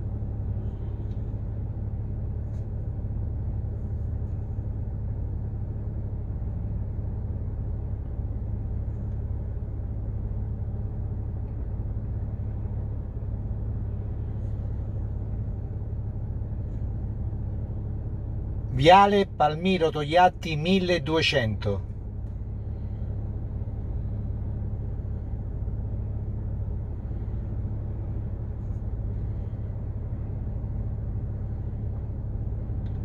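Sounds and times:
car engine idling: 0:00.0 - 0:33.0.

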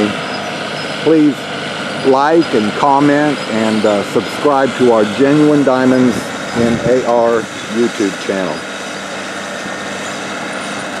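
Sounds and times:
bulldozer diesel engine droning: 0:00.0 - 0:11.0.

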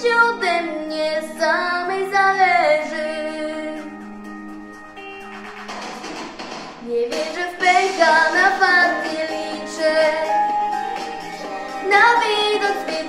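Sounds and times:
girl singing pop vocal: 0:00.0 - 0:04.1, 0:06.8 - 0:13.0
instrumental backing: 0:00.0 - 0:13.0.

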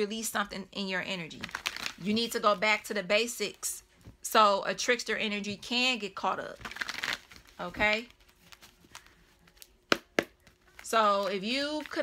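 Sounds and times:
cards tapping on table: 0:09.9 - 0:10.4.

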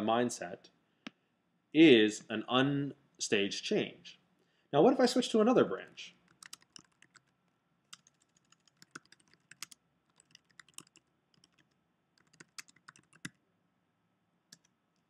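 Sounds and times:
faint computer keyboard typing: 0:06.2 - 0:13.4, 0:14.5 - 0:15.0.

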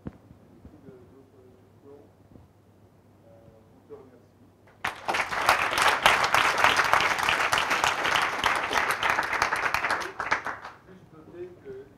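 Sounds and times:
audience applauding: 0:04.8 - 0:10.8.

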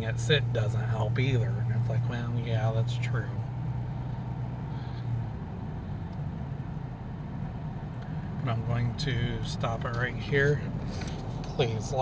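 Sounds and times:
car engine and tyre noise: 0:00.0 - 0:12.0.

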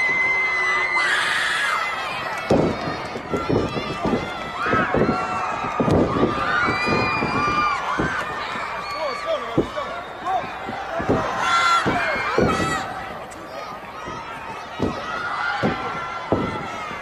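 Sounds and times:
crowd shouting and cheering: 0:00.0 - 0:17.0
wrestlers thudding on mat: 0:02.4 - 0:08.8, 0:09.5 - 0:13.3, 0:14.0 - 0:17.0.

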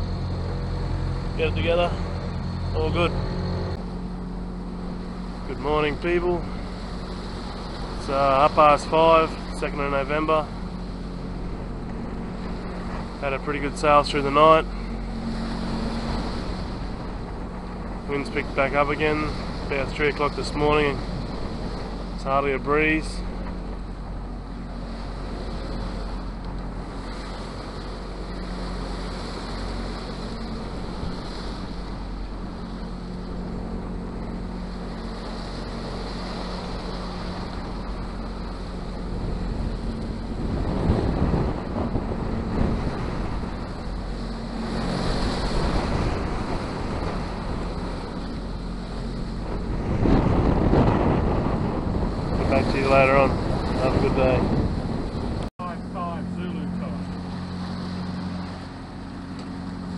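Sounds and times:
water noise: 0:00.0 - 0:59.9
wind buffeting microphone: 0:00.0 - 0:59.9.

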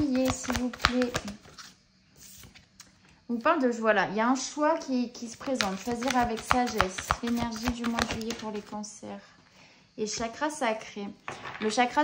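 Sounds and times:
cards rustling: 0:00.0 - 0:02.6, 0:05.4 - 0:08.7.

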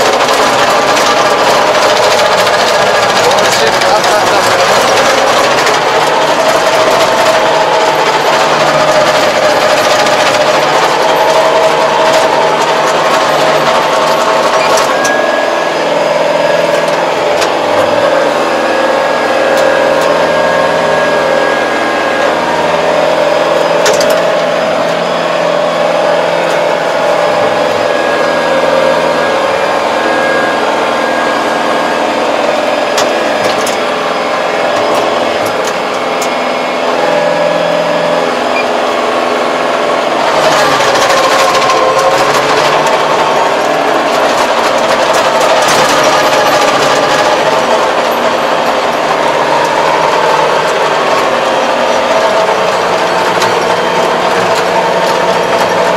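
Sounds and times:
tractor engine running: 0:00.0 - 0:55.9.

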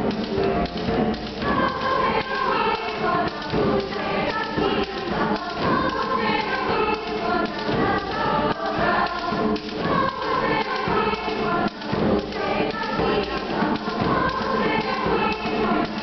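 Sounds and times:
girls' choir singing: 0:00.0 - 0:16.0
low accompaniment thuds: 0:00.0 - 0:16.0.

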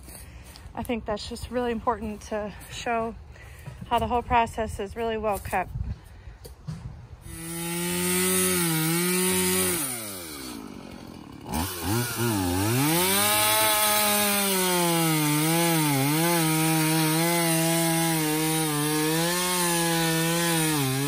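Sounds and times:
handheld power saw cutting: 0:07.2 - 0:21.0.

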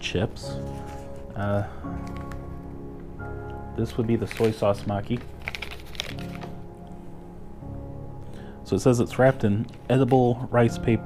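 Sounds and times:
soft background music: 0:00.0 - 0:11.0
snack wrapper crackling: 0:01.9 - 0:02.8, 0:03.4 - 0:06.7.

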